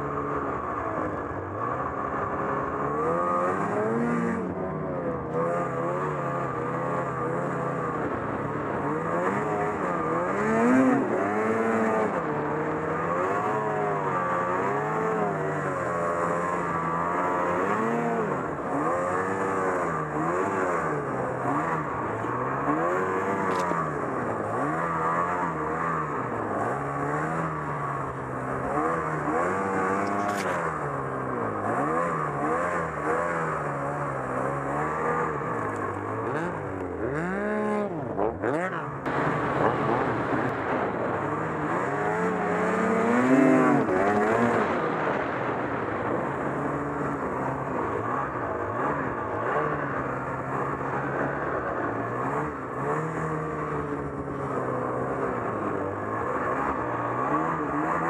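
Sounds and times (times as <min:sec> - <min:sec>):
snowmobile engine revving: 0:00.0 - 0:58.0.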